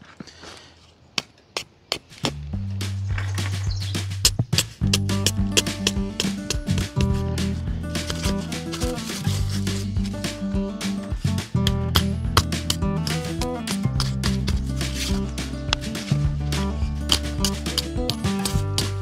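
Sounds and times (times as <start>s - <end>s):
acoustic guitar music: 2.5s - 19.0s.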